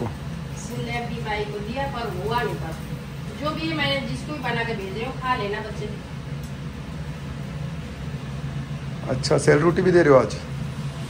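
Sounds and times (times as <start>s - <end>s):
range hood fan humming: 0.0s - 11.0s.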